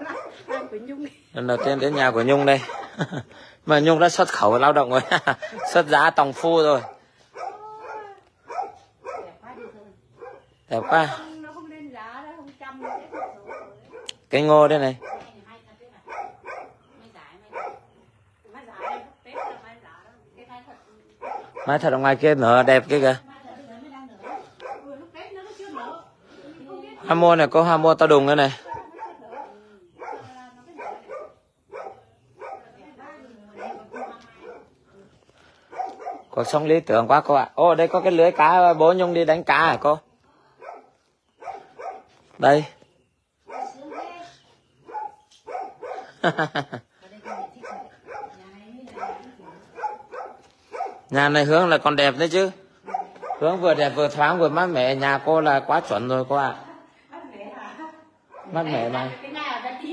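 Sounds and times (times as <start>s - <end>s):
dog barking: 0.0s - 3.1s, 4.3s - 11.5s, 12.7s - 18.1s, 18.7s - 19.9s, 21.2s - 22.2s, 24.1s - 25.2s, 28.3s - 34.9s, 35.6s - 36.9s, 37.7s - 39.8s, 40.6s - 42.4s, 43.4s - 46.6s, 47.2s - 51.8s, 52.4s - 54.8s, 58.2s - 59.2s.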